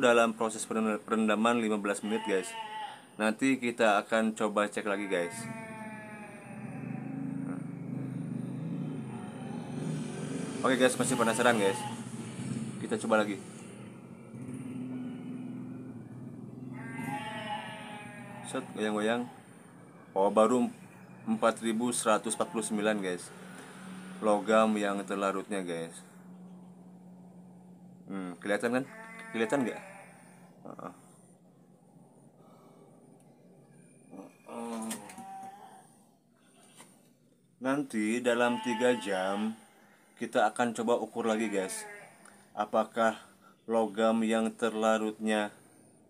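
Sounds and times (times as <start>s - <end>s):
animal bleating: 1.8s - 3.2s, 4.9s - 9.8s, 10.7s - 12.3s, 13.6s - 25.0s, 28.1s - 31.2s, 33.7s - 36.8s, 38.2s - 40.1s, 41.2s - 43.3s.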